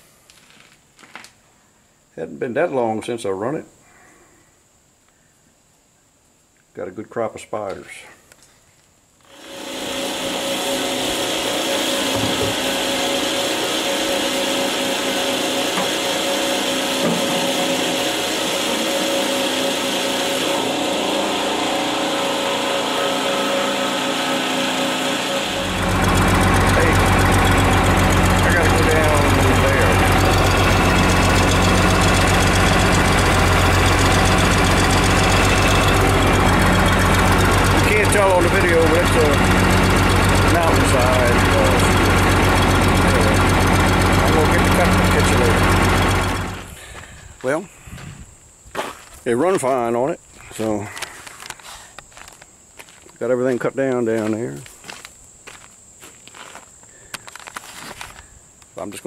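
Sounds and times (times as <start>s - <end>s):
fuel pump whining: 9.2s - 48.2s
diesel engine idling: 9.3s - 47.4s.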